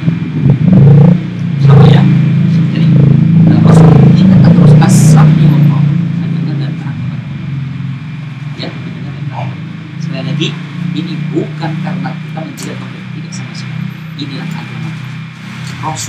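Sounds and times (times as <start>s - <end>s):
man talking: 1.6s - 7.2s, 8.6s - 15.1s, 15.7s - 16.0s.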